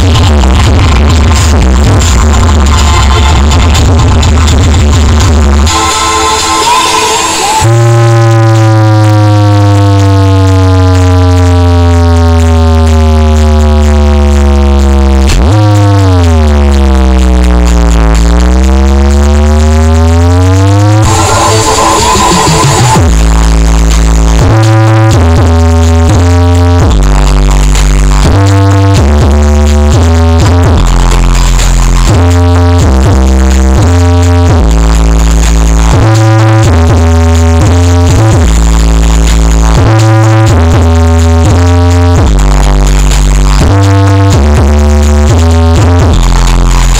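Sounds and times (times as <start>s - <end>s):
deep bass: 0.0s - 6.4s, 7.6s - 46.9s
choppy bass line: 0.0s - 46.9s
loud electronic dance music: 0.0s - 46.9s
falling synth sweep: 5.6s - 14.4s, 19.1s - 23.4s.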